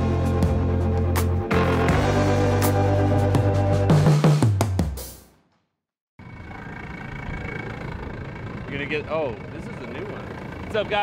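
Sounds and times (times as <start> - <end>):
background music: 0.0 - 5.4
outboard motor idling: 6.2 - 11.0.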